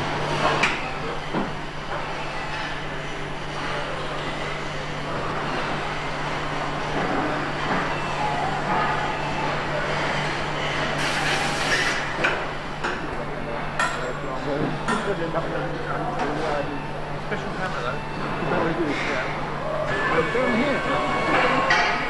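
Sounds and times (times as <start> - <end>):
machinery hum: 0.0 - 22.0.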